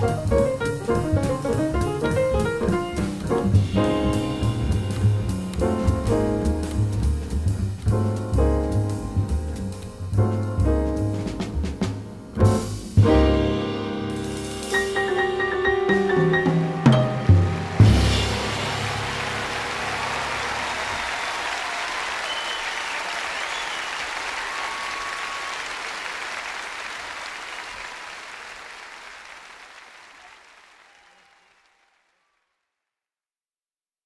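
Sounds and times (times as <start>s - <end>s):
audience applauding: 1.1s - 7.9s, 16.8s - 32.6s
music track final hit: 16.9s - 20.4s.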